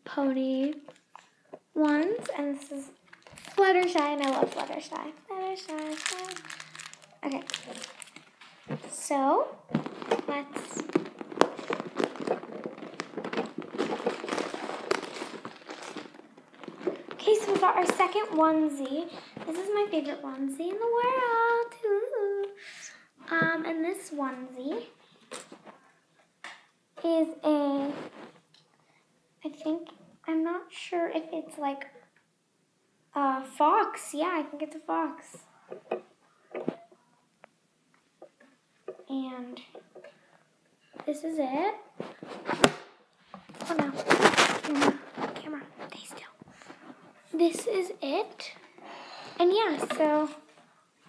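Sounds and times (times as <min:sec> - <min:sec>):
plastic bag crinkling: 0:00.7 - 0:09.0, 0:09.7 - 0:19.8, 0:43.4 - 0:46.8
fabric handling noises: 0:01.8 - 0:19.8, 0:41.9 - 0:47.6.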